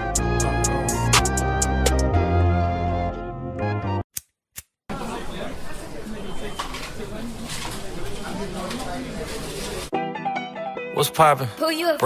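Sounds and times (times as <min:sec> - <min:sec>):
hip-hop track: 0:00.0 - 0:02.2.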